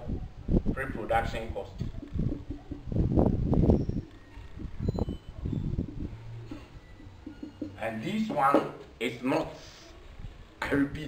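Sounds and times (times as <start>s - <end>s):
marker pen writing on whiteboard: 5.8s - 8.8s.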